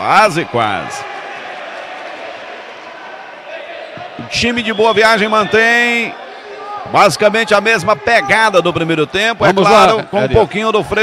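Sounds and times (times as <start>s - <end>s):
murmur of spectators: 0.0s - 11.0s.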